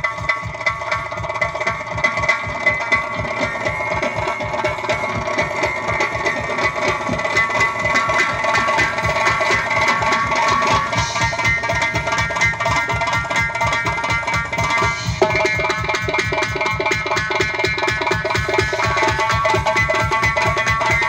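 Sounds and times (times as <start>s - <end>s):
frame drums in fast rhythm: 0.0s - 21.0s.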